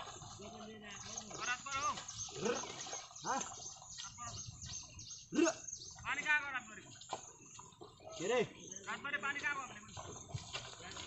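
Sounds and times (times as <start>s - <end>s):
birds chirping: 0.0s - 11.0s
man calling to oxen: 0.3s - 4.5s, 5.2s - 6.9s, 8.0s - 10.1s.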